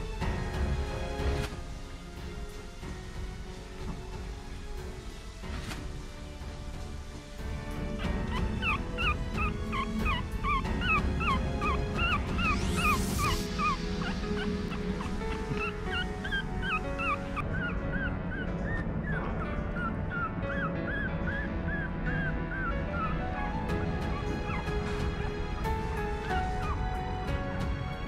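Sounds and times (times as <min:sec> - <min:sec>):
background music: 0:00.0 - 0:28.0
puppy crying in high squeaks: 0:08.0 - 0:23.2.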